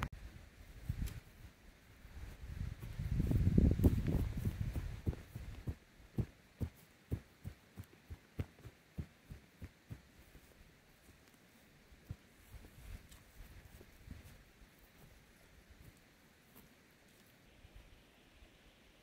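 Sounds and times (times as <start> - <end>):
rubber boots stepping on grass: 2.2 - 17.4.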